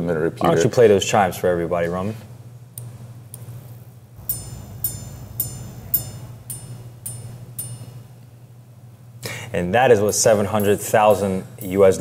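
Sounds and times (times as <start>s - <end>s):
ringing gong chimes: 4.2s - 8.3s.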